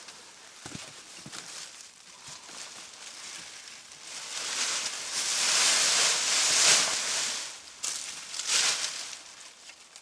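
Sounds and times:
tarp and plastic rustling: 0.0s - 10.0s.

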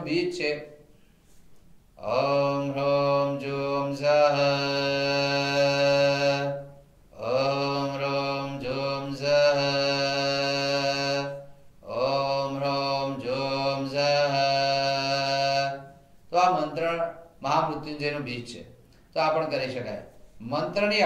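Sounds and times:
man chanting in long tones: 0.0s - 0.8s, 2.0s - 21.0s.

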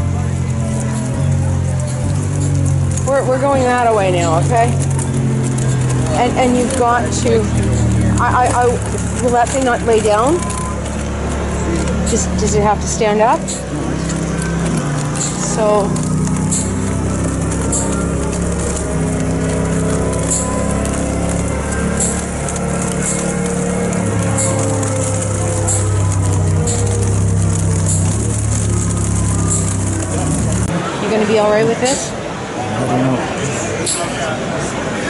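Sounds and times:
music with held low notes: 0.0s - 31.0s.

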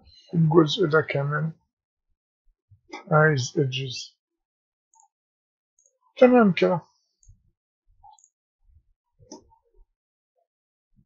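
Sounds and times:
computer mouse clicks: 8.0s - 8.4s.

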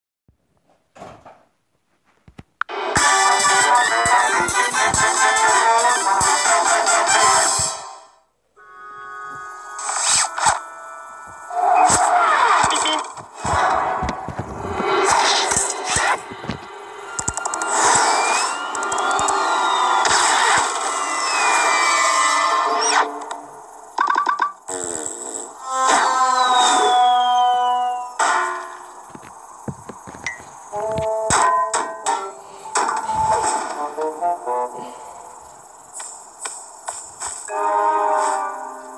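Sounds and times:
fast cartoon music: 2.7s - 8.0s.

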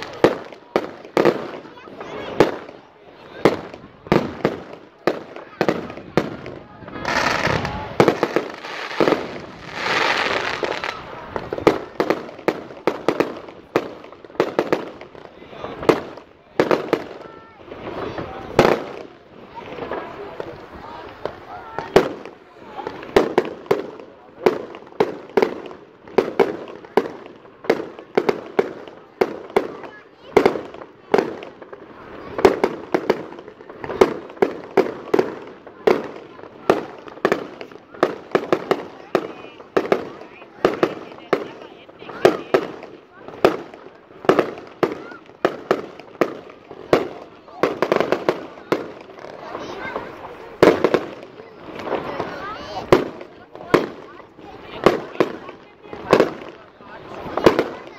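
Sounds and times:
firework crackle: 0.0s - 57.9s.

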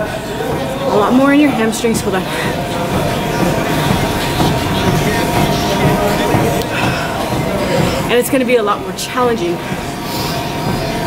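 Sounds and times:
treadmill motor and belt hum: 0.0s - 11.0s.

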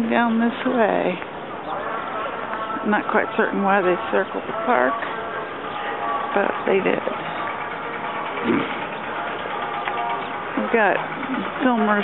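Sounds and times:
vehicle engines running: 0.0s - 12.0s.

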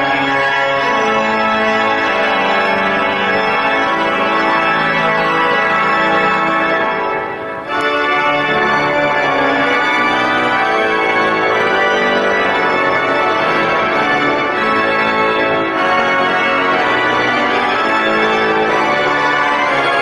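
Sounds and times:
organ playing chords: 0.0s - 20.0s.

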